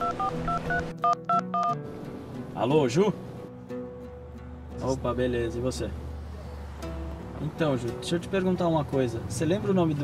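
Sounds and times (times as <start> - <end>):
telephone keypad dialing tones: 0.0 - 1.8.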